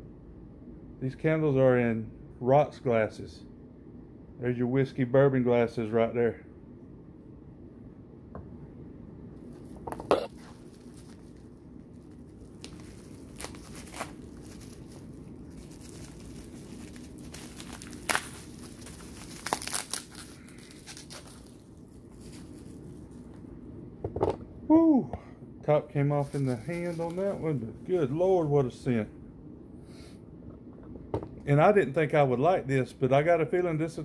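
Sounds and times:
bubble wrap sharp crackles: 0:09.4 - 0:23.4, 0:26.1 - 0:28.2
bubble wrap crinkling: 0:09.4 - 0:23.6, 0:26.0 - 0:28.6.

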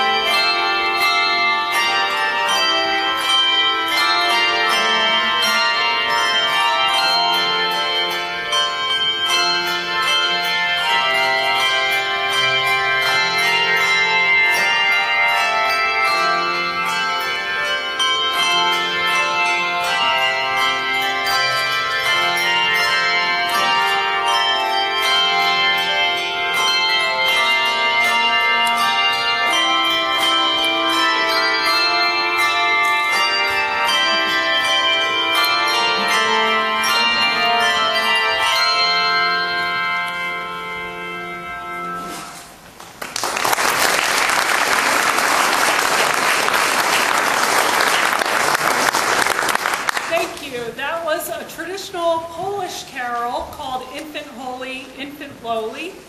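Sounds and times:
handbell choir playing chords: 0:00.0 - 0:55.8
audience applauding: 0:42.8 - 0:50.4.

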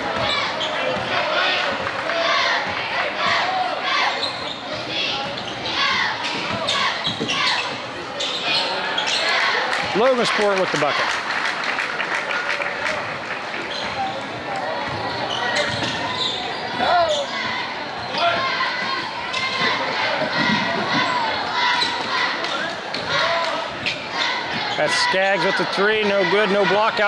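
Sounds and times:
crowd chatter: 0:00.0 - 0:27.0.

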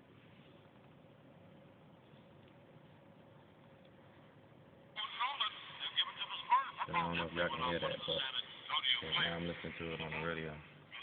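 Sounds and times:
tinny radio commentator talking: 0:05.0 - 0:11.0.

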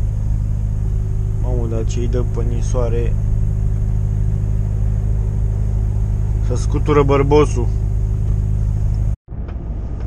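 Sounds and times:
diesel truck engine idling: 0:00.0 - 0:09.2.

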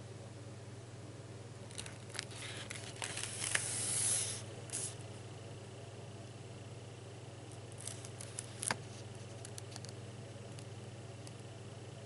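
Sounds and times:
steady low hum: 0:00.0 - 0:12.0
paper page being turned: 0:01.7 - 0:05.0, 0:07.8 - 0:09.8.

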